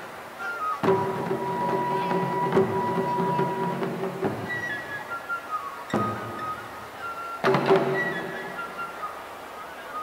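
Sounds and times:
wind instrument holding high note: 0.4 - 10.0.

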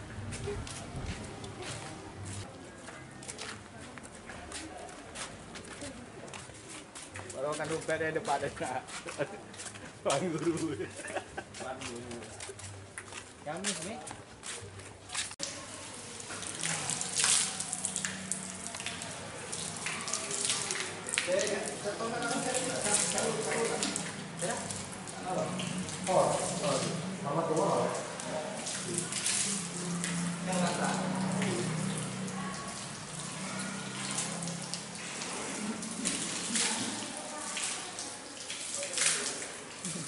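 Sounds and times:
hands washing under water: 3.2 - 40.0
water running from taps: 15.2 - 40.0.

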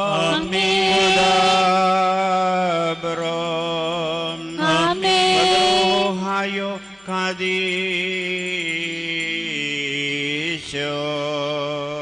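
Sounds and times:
male voices chanting liturgy: 0.0 - 12.0.

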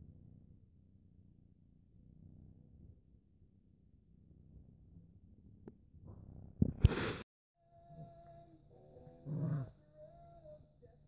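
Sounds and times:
dog growling: 9.2 - 9.8.

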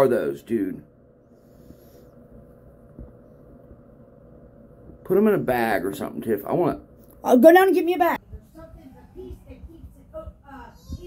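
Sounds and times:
faint steady hum: 0.0 - 11.0
low rumble: 0.8 - 5.4.

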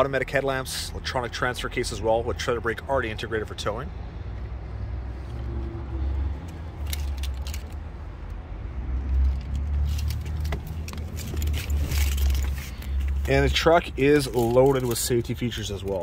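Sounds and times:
clicks and light rattles: 6.5 - 7.8.

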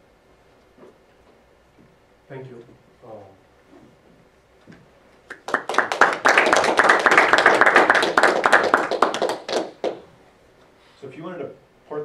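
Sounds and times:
audience applauding: 5.3 - 10.0.

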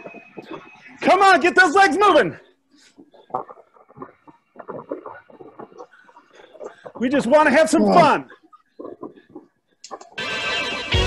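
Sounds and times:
music playing: 10.2 - 11.0.

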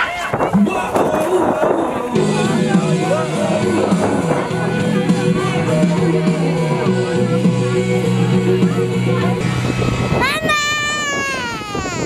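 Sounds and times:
background music: 0.6 - 11.3
child squealing: 10.2 - 12.0.

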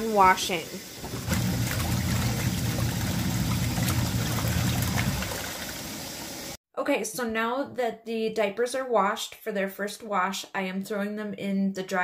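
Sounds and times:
washing machine motor hum: 0.0 - 6.6
water sloshing and churning: 0.8 - 6.6.

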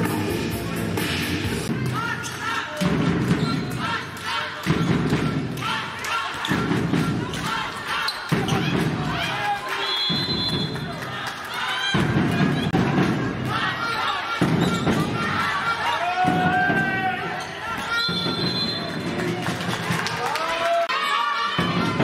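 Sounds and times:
players' voices: 1.7 - 22.0
shoes squeaking on floor: 3.3 - 3.8, 14.5 - 15.0, 17.3 - 19.0.

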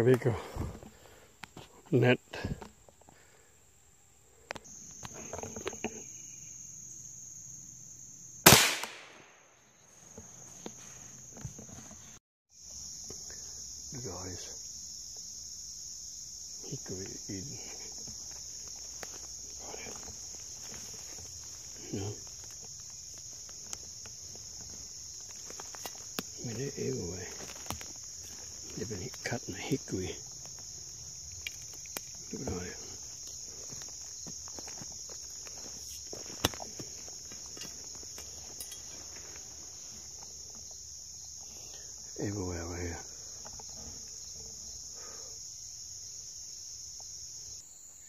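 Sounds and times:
high drone of insects: 0.0 - 48.0
faint ticks: 4.4 - 6.0
gunshot: 8.5 - 9.5
footsteps in dry leaves: 18.4 - 39.7.

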